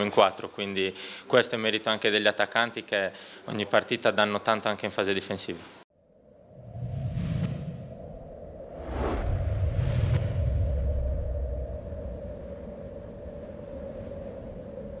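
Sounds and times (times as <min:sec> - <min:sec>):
low rumble: 0:06.1 - 0:15.0
swoosh: 0:06.2 - 0:13.1
sharp whooshes: 0:06.6 - 0:11.3.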